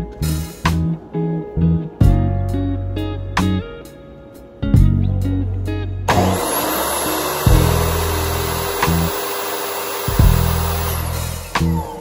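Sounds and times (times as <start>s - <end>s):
miter saw whining cutting wood: 6.1s - 12.0s.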